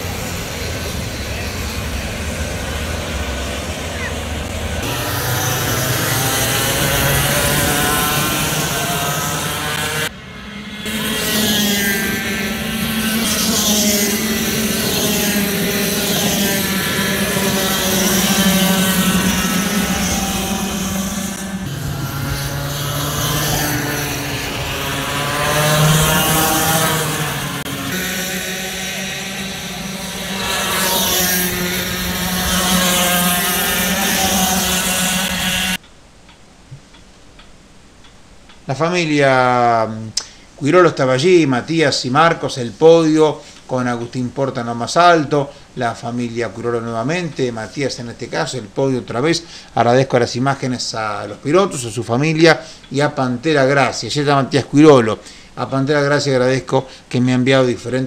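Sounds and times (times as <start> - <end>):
racing kart engines: 0.0 - 35.8.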